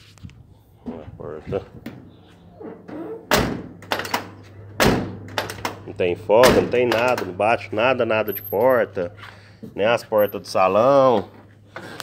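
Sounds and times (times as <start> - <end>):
latch and handle clicks: 2.8 - 7.4
steel car door thunks: 4.8 - 5.8.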